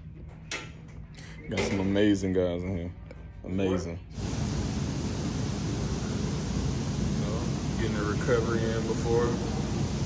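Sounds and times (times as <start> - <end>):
hot tub jets churning water: 4.2 - 10.0.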